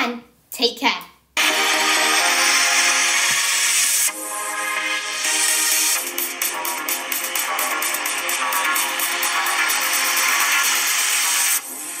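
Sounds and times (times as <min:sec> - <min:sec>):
electronic music: 0:01.4 - 0:12.0.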